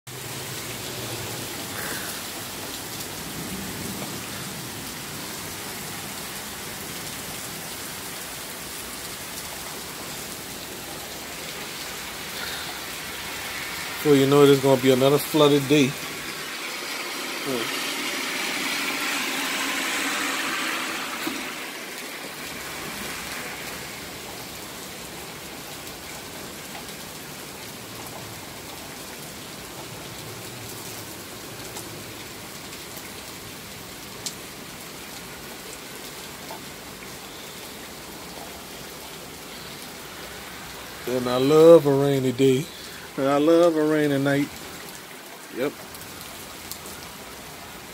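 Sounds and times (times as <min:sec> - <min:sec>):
heavy rain falling: 0:00.1 - 0:47.9
rushing swell: 0:12.9 - 0:24.2.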